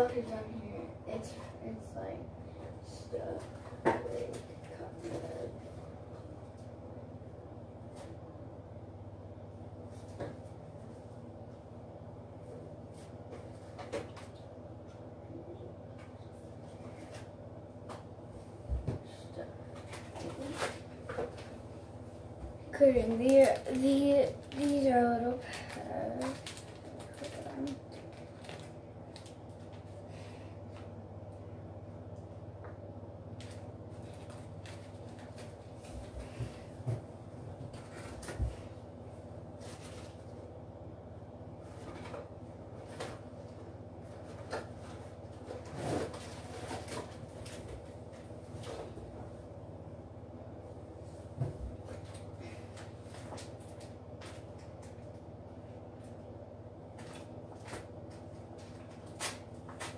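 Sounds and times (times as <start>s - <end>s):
plastic packet rustling: 23.0s - 29.8s, 33.4s - 35.8s.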